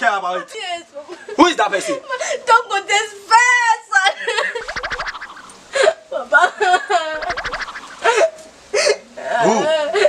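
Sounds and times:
wavering pitch-bending cry: 4.6 - 5.8, 7.2 - 8.3.

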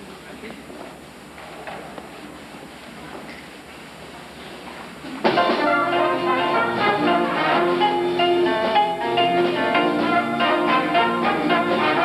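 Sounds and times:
horns holding chords: 5.4 - 12.0.

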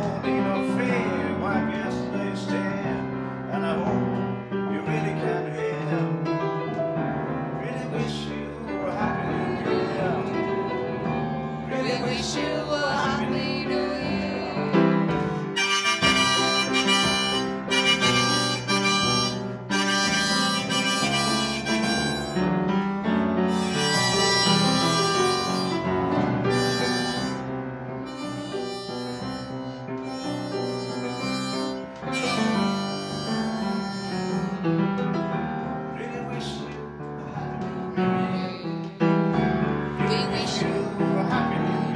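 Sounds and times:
upright piano accompaniment: 0.0 - 41.9
harmonica playing a melody: 15.3 - 34.9, 40.1 - 41.9.

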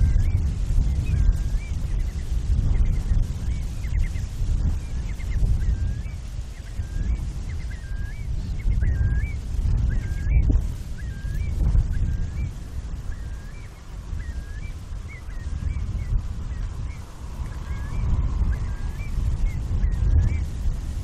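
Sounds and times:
bird calling: 0.0 - 20.5
loud unsteady low rumble: 0.0 - 21.0.

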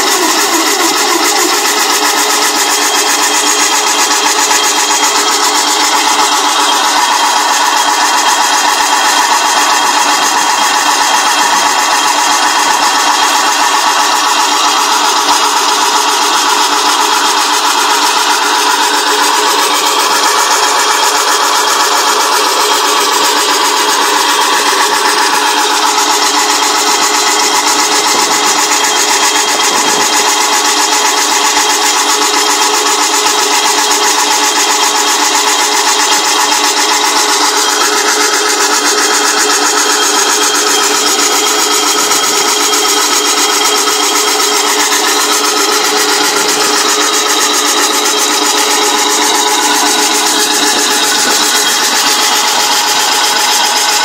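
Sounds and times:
loud mechanical drone of machine: 0.0 - 54.0.

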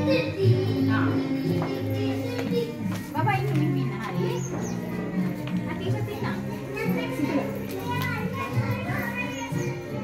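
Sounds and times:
background music: 0.0 - 10.0
children chattering and calling: 0.0 - 10.0.

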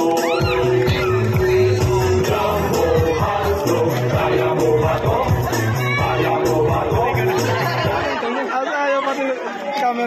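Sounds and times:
background music: 0.0 - 8.3
people talking at once: 0.7 - 10.0.

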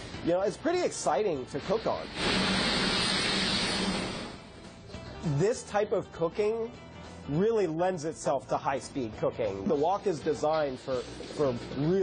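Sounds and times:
wok burner flame roaring: 1.9 - 4.5.

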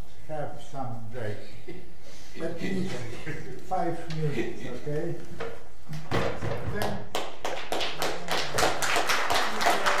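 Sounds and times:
small audience applauding: 6.7 - 10.0.

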